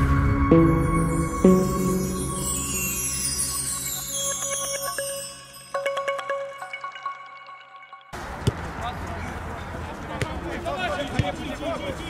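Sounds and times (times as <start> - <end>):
jingle chime notes: 0.0 - 8.2
players' voices: 8.4 - 12.0.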